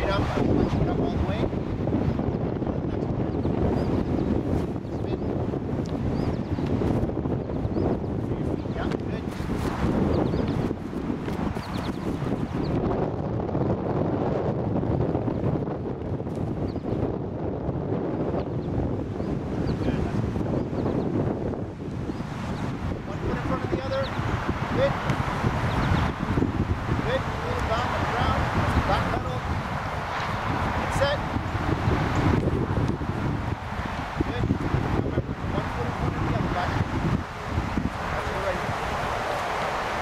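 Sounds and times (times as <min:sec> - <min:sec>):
wind blowing across microphone: 0:00.0 - 0:40.0.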